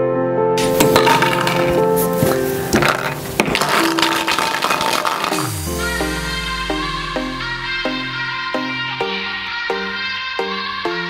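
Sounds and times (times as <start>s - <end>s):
background music: 0.0s - 11.0s
metal nuts rattling in plastic bottle: 0.6s - 5.5s.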